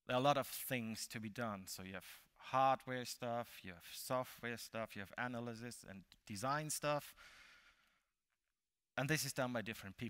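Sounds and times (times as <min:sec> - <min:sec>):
man breathing out faintly: 0:07.2 - 0:08.1.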